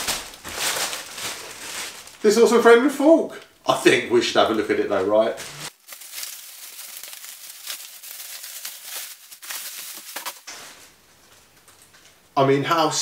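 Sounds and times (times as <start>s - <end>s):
plastic wrap crinkling and tearing: 0.0s - 2.5s, 4.4s - 10.9s.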